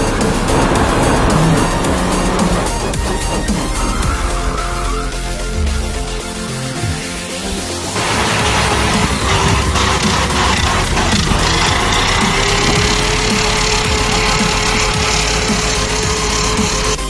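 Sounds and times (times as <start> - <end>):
engine revving high: 0.0 - 17.0
wheels spinning in dirt: 0.0 - 17.0.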